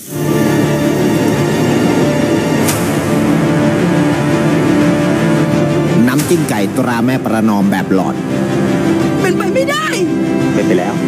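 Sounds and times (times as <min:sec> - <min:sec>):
sustained background music: 0:00.0 - 0:11.0.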